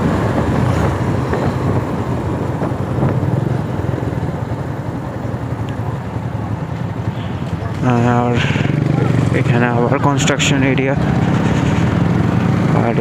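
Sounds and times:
wind on microphone: 0.0 - 5.6
motorcycle engine running: 0.0 - 13.0.

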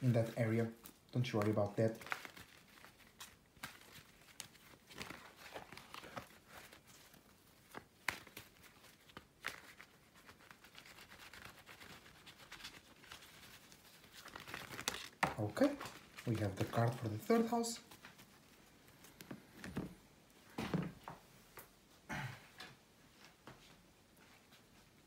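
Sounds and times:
cards being shuffled: 0.0 - 20.0.

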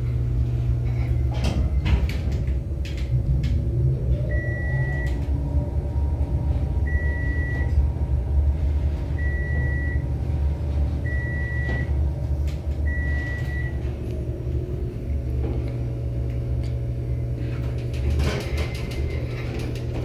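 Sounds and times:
elevator ride rumble and whine: 0.0 - 20.0.

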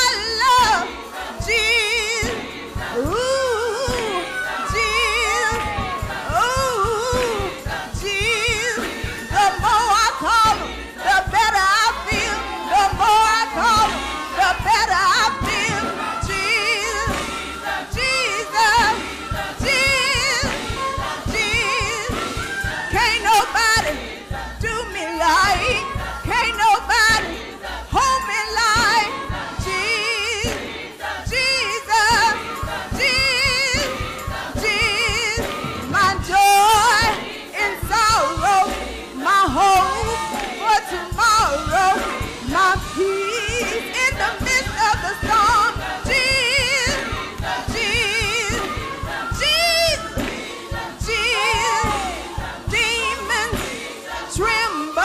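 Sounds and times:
band with steady beat: 0.0 - 55.0
choir singing: 0.0 - 55.0
woman singing with vibrato: 0.0 - 55.0.

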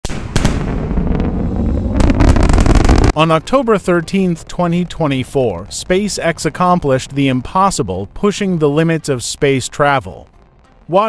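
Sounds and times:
rocket engines crackling rumble: 0.0 - 11.0
sharp crack: 0.0 - 11.0.

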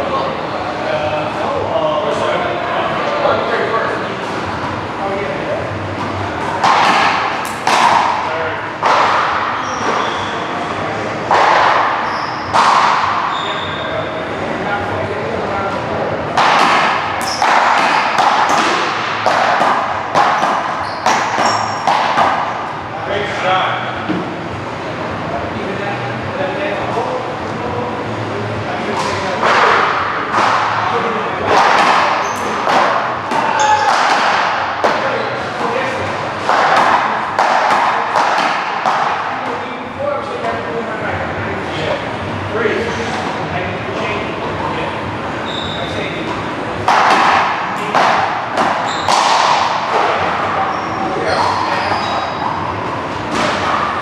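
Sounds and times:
paddles hitting rubber ball: 6.0 - 10.1, 11.2 - 13.4, 16.3 - 22.6, 29.0 - 39.5, 46.3 - 50.5.

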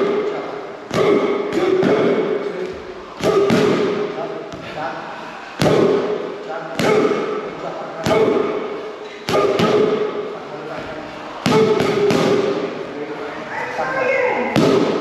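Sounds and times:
boxing gloves hitting pads: 0.9 - 2.3, 3.2 - 4.7, 5.6 - 7.4, 9.3 - 10.2, 11.4 - 12.7, 14.5 - 15.0.

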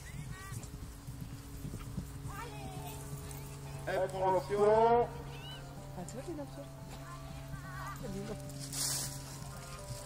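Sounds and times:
hoofbeats on grass: 0.0 - 10.0.

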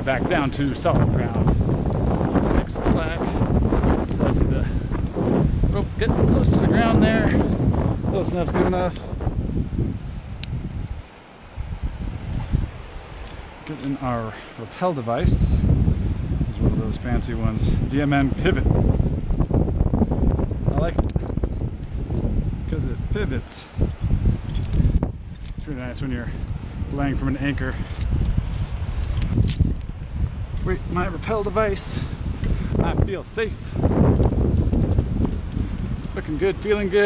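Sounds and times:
wind buffeting microphone: 0.0 - 37.0
metallic clicks of climbing gear: 0.6 - 2.3, 8.9 - 11.0, 20.4 - 22.3, 24.2 - 25.7, 27.8 - 29.9, 34.1 - 37.0
carabiner metallic click: 10.4 - 11.0, 21.0 - 22.3, 24.4 - 25.6, 27.9 - 29.9.

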